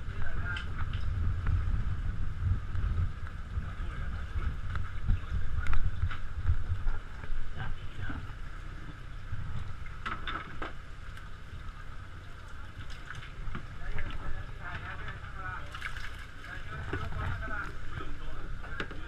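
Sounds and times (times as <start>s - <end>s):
boat engine rumbling: 0.0s - 19.0s
wind on microphone: 0.0s - 19.0s
voices talking: 11.9s - 19.0s.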